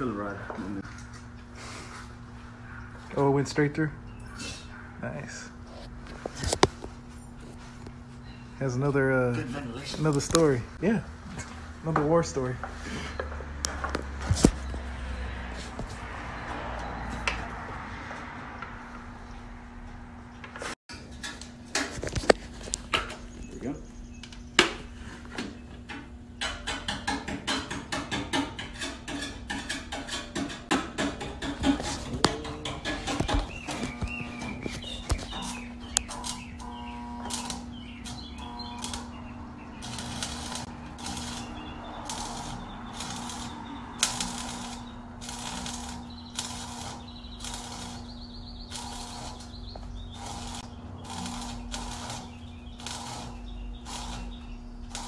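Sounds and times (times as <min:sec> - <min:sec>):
arc welder crackling: 0:08.6 - 0:12.6, 0:25.9 - 0:55.0.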